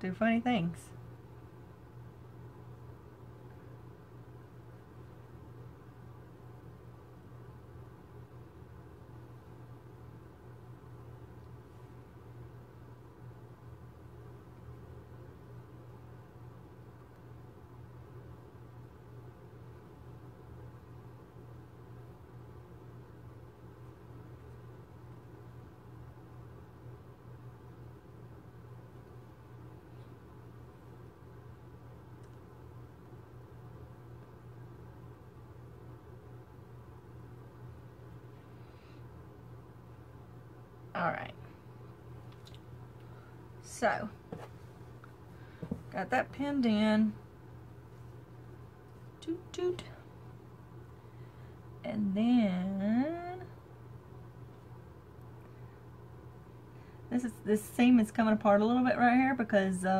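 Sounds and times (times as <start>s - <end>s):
faint low room hum: 0.0s - 59.9s.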